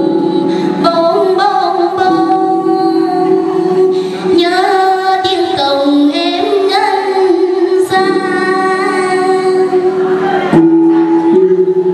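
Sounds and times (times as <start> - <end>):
musical accompaniment: 0.0 - 11.9
woman singing into a microphone: 0.0 - 11.9.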